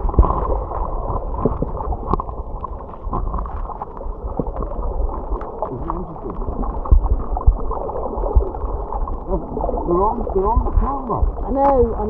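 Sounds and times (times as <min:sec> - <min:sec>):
underwater churning water: 0:00.0 - 0:12.0.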